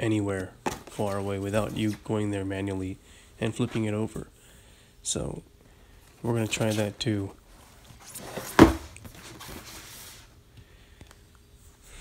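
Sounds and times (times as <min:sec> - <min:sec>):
cardboard rustling and scraping: 0:06.3 - 0:10.4
cardboard box thump: 0:08.3 - 0:09.0.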